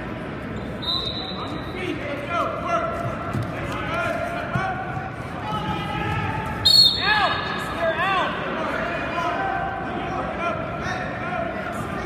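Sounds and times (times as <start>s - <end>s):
referee's whistle blast: 0.6s - 1.8s, 6.6s - 7.5s
crowd and coaches shouting: 1.8s - 12.0s.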